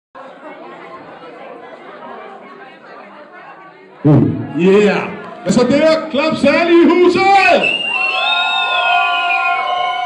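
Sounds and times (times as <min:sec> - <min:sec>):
audience chatter: 0:00.2 - 0:10.0.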